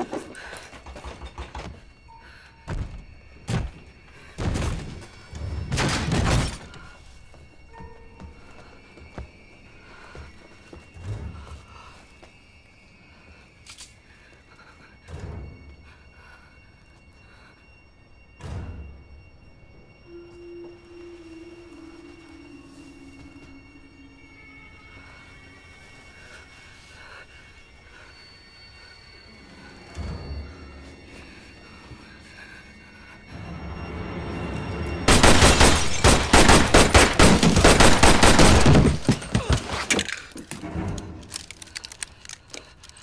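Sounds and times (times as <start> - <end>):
eerie film score sustained tones: 0.0 - 43.0.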